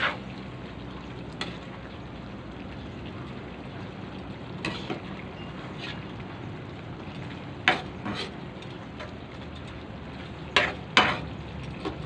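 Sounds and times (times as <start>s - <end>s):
metal spatula scraping a pan: 0.0s - 0.2s, 4.6s - 6.1s, 7.6s - 8.4s, 10.5s - 12.0s
stew simmering and bubbling: 0.0s - 12.0s.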